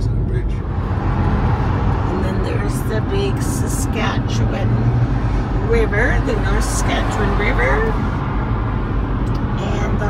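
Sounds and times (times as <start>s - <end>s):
car cabin road and engine rumble: 0.0s - 10.0s.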